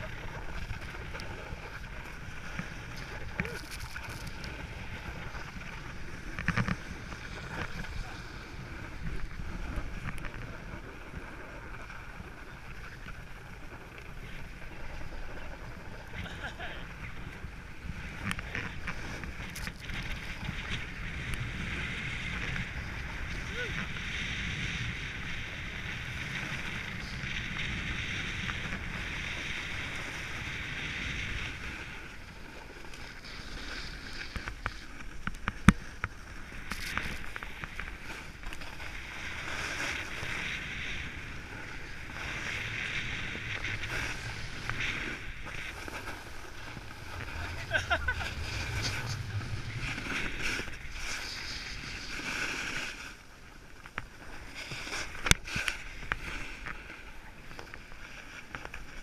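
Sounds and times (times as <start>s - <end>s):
snowboard scraping over snow: 0.0s - 59.0s
wind buffeting microphone: 36.6s - 52.3s.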